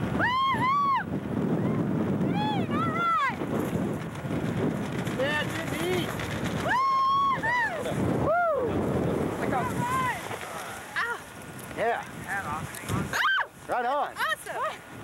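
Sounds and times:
voices calling and whooping: 0.0s - 3.4s, 6.5s - 11.4s, 12.8s - 14.9s
wind rumbling on microphone: 0.0s - 15.0s.

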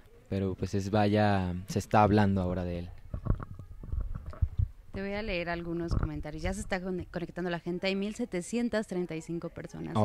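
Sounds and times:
microphone handling thumps and rubs: 3.0s - 7.1s.

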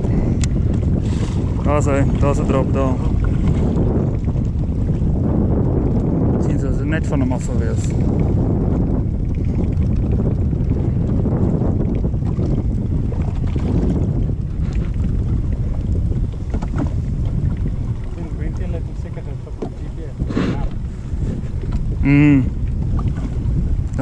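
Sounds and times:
water lapping against boat hull: 0.0s - 24.0s
wind rumbling on microphone: 0.0s - 24.0s.

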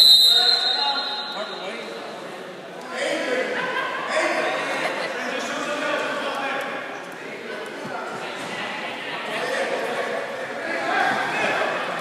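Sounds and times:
referee's whistle blast: 0.0s - 1.7s.

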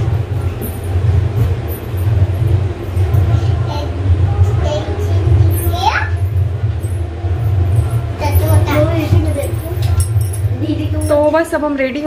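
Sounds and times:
low rumble with hum: 0.0s - 12.0s.

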